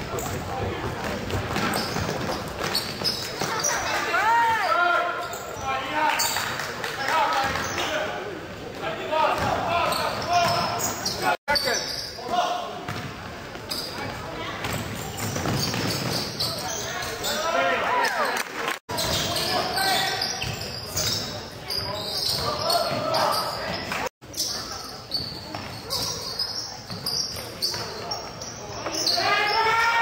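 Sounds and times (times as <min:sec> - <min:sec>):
sneakers squeaking: 0:00.0 - 0:06.6, 0:07.3 - 0:30.0
voices echoing in gym: 0:00.0 - 0:30.0.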